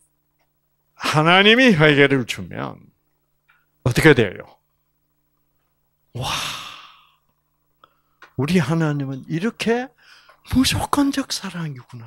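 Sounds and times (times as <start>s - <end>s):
man's breathy exclamation: 6.2s - 7.2s.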